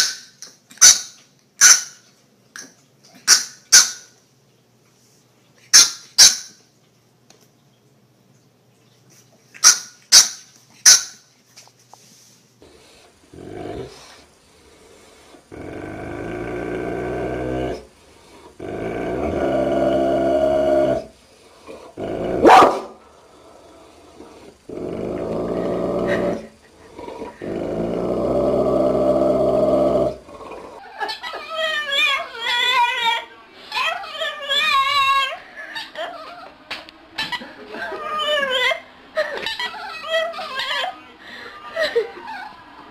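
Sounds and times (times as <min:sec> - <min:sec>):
dog growling low: 0:12.6 - 0:14.2, 0:14.8 - 0:22.6, 0:23.2 - 0:30.8
dog yipping: 0:22.4 - 0:22.9
dog barking: 0:22.4 - 0:23.0.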